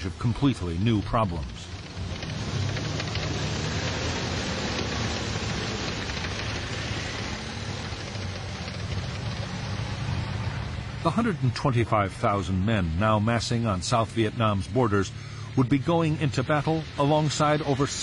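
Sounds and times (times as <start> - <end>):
tank engines and tracks: 0.0 - 18.0.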